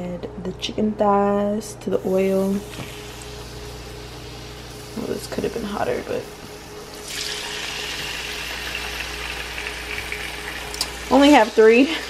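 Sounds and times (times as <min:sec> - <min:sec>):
chicken sizzling in hot oil: 0:02.1 - 0:12.0.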